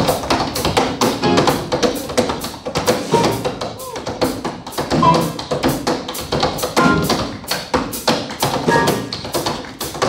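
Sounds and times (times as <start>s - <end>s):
tap shoes on wooden board: 0.0s - 10.0s.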